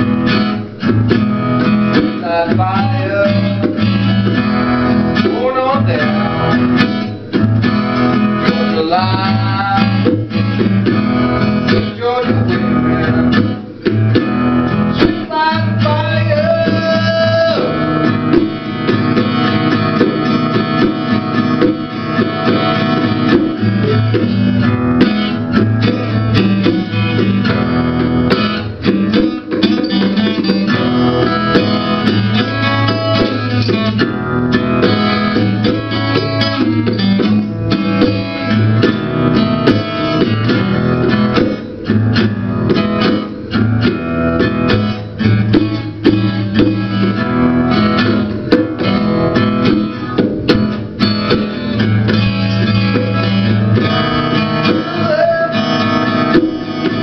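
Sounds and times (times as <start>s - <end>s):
acoustic guitar playing blues: 0.0s - 57.0s
bongos struck by hand: 6.7s - 57.0s.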